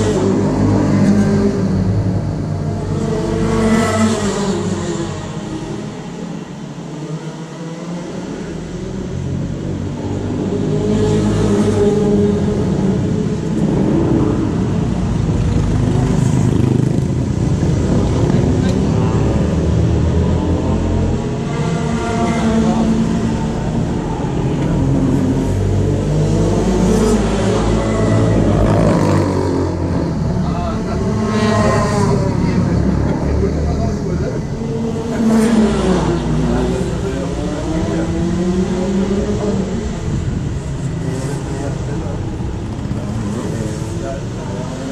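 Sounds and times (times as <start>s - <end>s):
vehicle engine revving: 7.1s - 44.9s.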